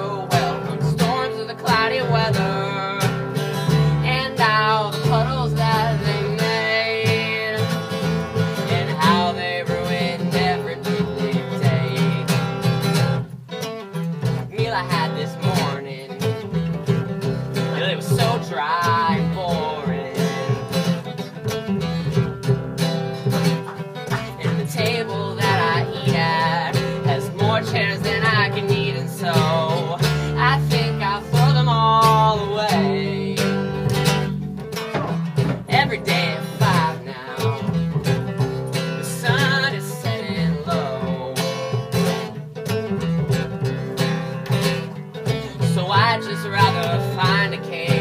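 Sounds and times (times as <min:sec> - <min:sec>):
acoustic guitar strummed: 0:00.0 - 0:48.0
plucked double bass: 0:00.0 - 0:48.0.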